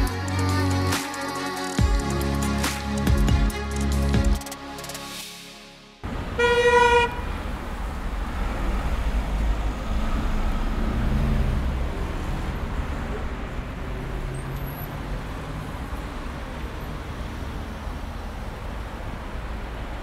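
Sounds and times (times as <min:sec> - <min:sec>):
road traffic noise: 0:00.0 - 0:20.0
car horn toot: 0:06.3 - 0:07.3.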